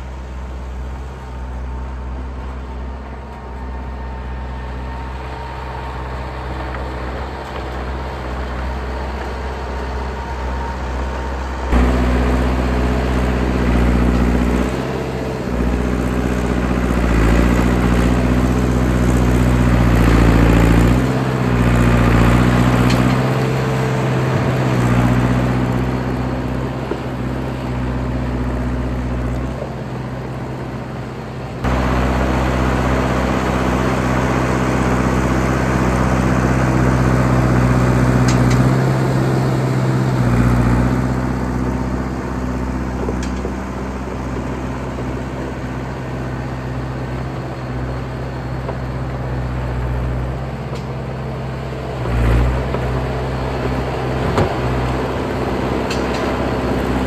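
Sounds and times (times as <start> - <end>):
bulldozer engine under load: 0.0 - 57.0.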